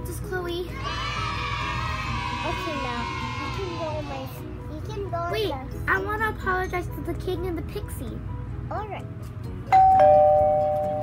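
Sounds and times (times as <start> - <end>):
two-note doorbell chime: 9.7 - 11.0.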